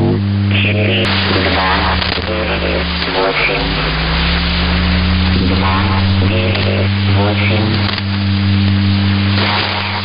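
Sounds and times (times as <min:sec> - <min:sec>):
low radio hum: 0:00.0 - 0:10.0
static hiss: 0:00.0 - 0:10.0.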